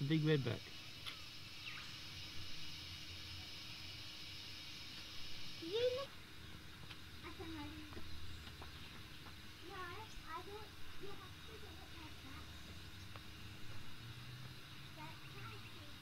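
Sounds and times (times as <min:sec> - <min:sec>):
steady high hiss: 0:00.0 - 0:16.0.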